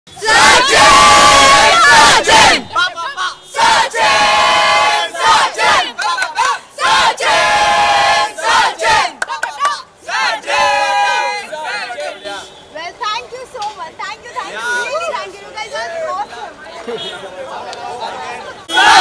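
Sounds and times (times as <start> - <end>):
young people cheering: 18.7 - 19.0.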